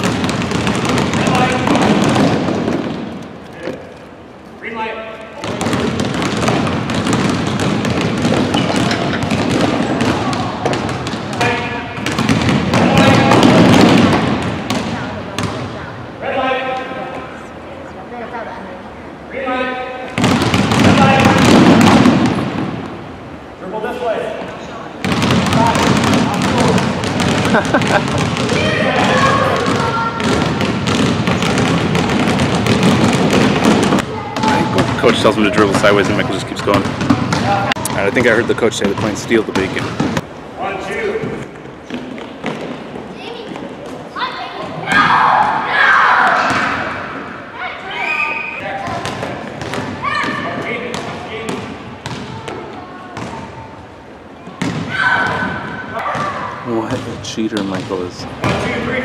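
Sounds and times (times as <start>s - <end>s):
basketballs bouncing on hardwood floor: 0.0s - 3.8s, 5.4s - 15.8s, 20.2s - 23.0s, 25.0s - 40.3s, 41.8s - 44.0s, 46.4s - 47.0s, 48.8s - 53.4s, 54.5s - 58.9s
children calling out: 28.5s - 30.4s, 43.2s - 46.8s.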